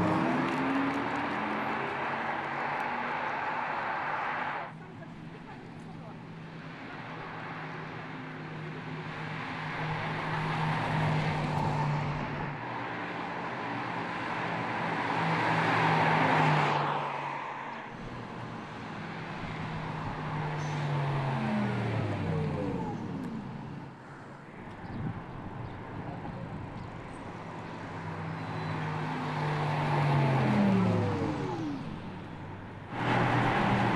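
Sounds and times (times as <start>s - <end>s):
car tyre and road noise: 0.0s - 33.9s.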